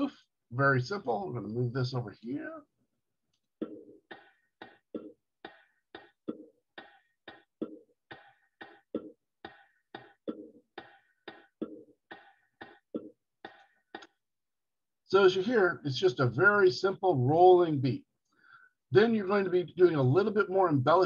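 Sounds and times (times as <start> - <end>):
bongo rhythm: 3.6 - 13.6.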